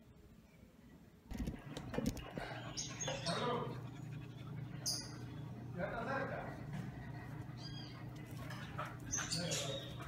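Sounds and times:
dogs playing: 1.3s - 10.0s.

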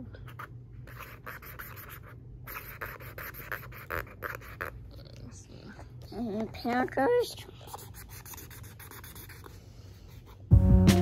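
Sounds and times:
marker scribbling on paper: 0.3s - 4.8s, 6.6s - 10.4s.

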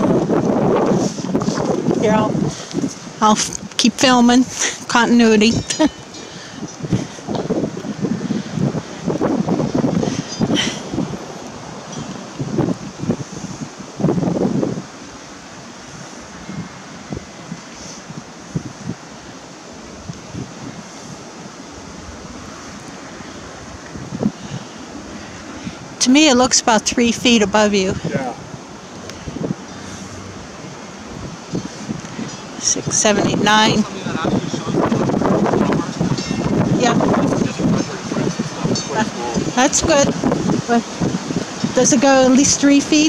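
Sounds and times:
wind buffeting microphone: 0.0s - 43.0s.

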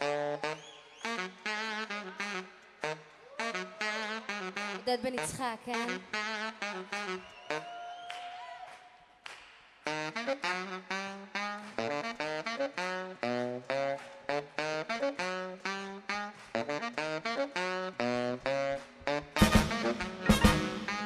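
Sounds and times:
tenor saxophone playing: 0.0s - 7.7s, 9.8s - 21.0s.

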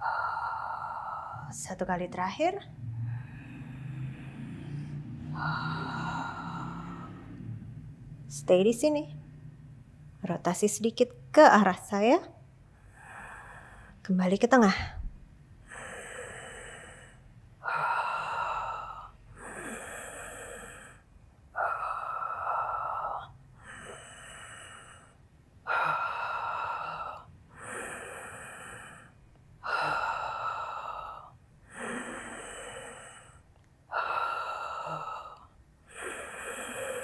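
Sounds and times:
woman breathing: 0.0s - 10.2s, 12.4s - 37.0s.

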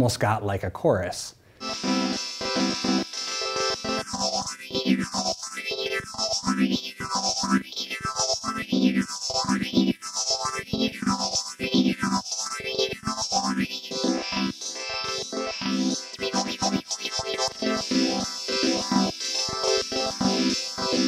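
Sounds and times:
synthesizer sequence with phaser: 1.6s - 21.0s.

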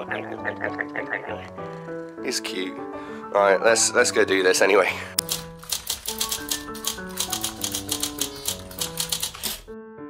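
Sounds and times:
background music of held notes: 0.0s - 10.0s
typewriter key clicks: 5.2s - 9.7s.

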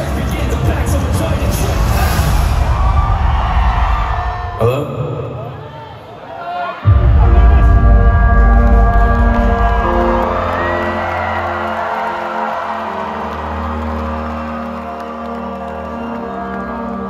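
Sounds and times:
crowd cheering and whooping: 1.3s - 4.8s, 8.4s - 17.0s
sustained synthesizer chords: 6.8s - 17.0s.

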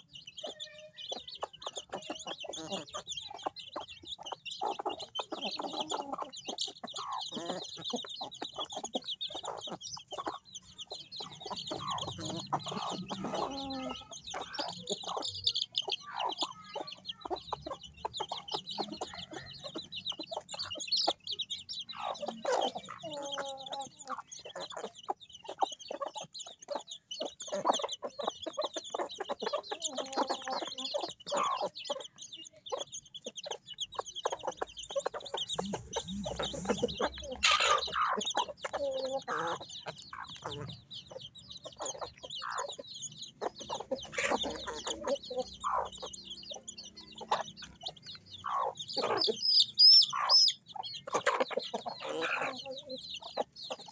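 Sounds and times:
chicks peeping: 0.0s - 53.9s
hens clucking: 0.0s - 53.9s.

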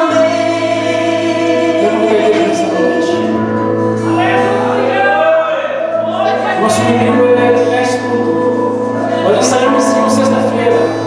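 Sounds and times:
live band: 0.0s - 11.0s
vocal group singing gospel: 0.0s - 11.0s.

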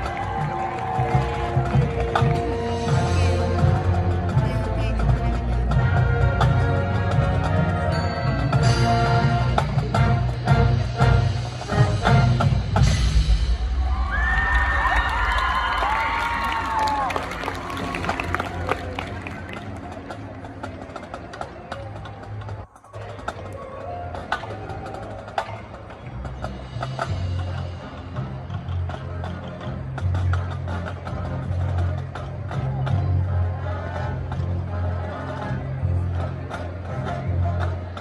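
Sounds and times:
marching band brass and drums: 0.0s - 38.0s
heavy percussion strikes: 1.9s - 14.9s.

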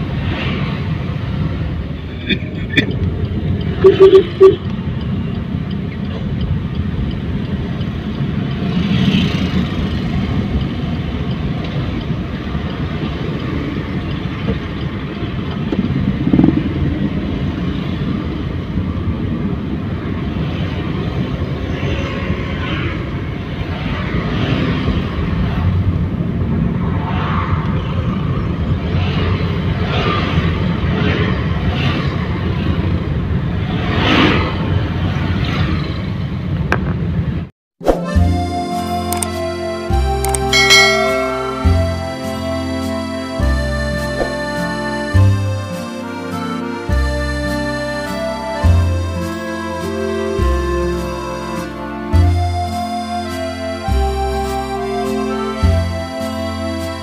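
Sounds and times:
motorcycles passing: 0.0s - 37.4s, 38.7s - 56.8s
car engine and road noise: 0.0s - 57.0s.

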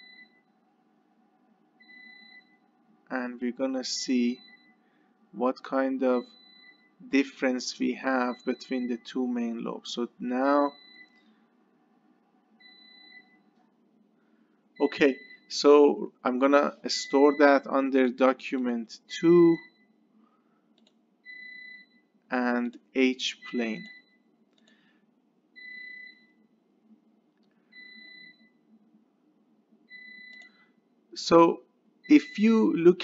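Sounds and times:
faint electronic beeping: 0.0s - 20.1s, 21.2s - 24.8s, 27.6s - 29.0s, 29.8s - 33.0s
faint high-pitched tone: 14.8s - 15.2s.

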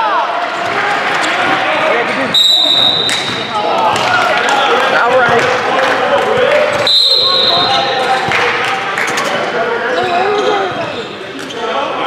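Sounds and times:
referee's whistle blast: 2.3s - 3.4s, 6.8s - 8.0s
people calling out: 9.8s - 11.2s.

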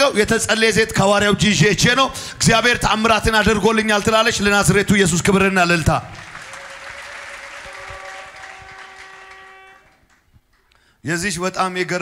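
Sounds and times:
congregation applauding: 6.0s - 10.9s.

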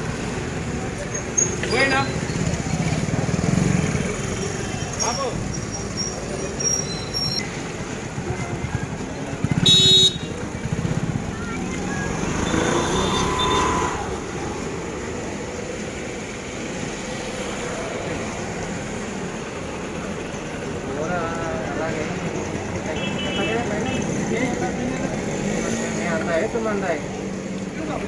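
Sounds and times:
motorcycles running: 0.0s - 28.0s
street traffic: 0.0s - 28.0s
vehicle horn: 9.6s - 10.4s.

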